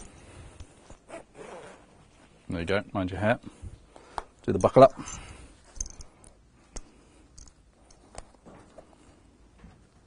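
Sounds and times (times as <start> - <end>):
jacket fabric rustling: 0.0 - 3.9.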